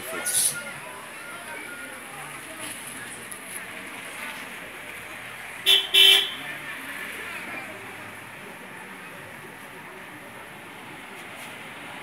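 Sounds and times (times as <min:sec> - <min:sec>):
vehicle horn beeps: 0:05.7 - 0:06.4.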